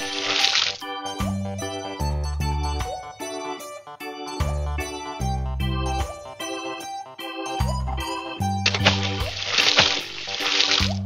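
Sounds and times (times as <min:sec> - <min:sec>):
watery splashing effect: 0:00.0 - 0:00.8, 0:08.7 - 0:11.0
bright keyboard music: 0:00.0 - 0:11.0.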